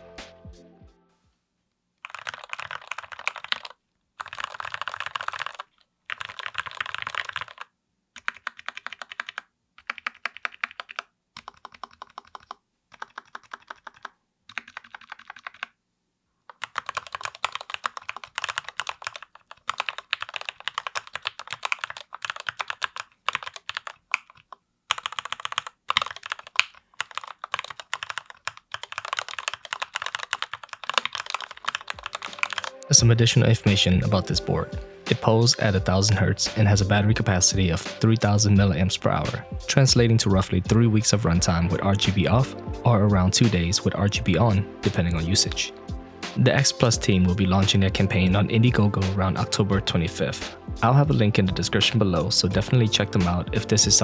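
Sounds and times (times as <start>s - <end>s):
mechanical keyboard typing: 2.0s - 15.8s, 16.5s - 32.9s.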